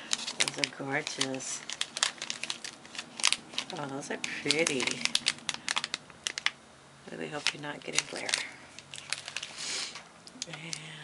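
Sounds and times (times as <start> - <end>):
plastic bag crinkling: 0.0 - 10.9.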